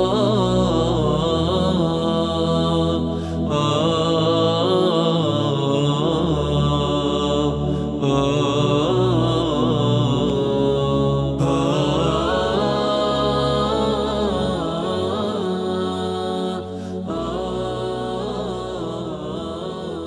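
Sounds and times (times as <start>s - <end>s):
person singing wavering melody: 0.0s - 20.0s
sustained low drone: 0.0s - 20.0s.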